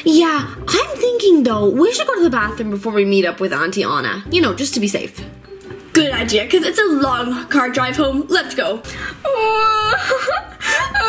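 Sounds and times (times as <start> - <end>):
small child crying: 9.3 - 11.0.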